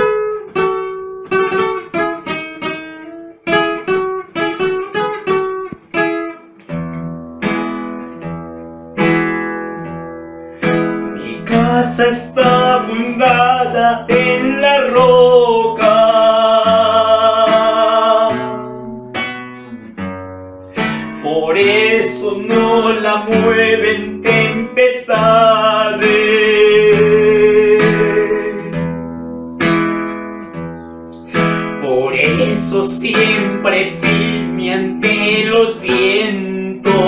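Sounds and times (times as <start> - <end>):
acoustic guitar strumming: 0.0 - 37.0
man singing: 11.0 - 19.2, 20.8 - 30.0, 31.3 - 37.0.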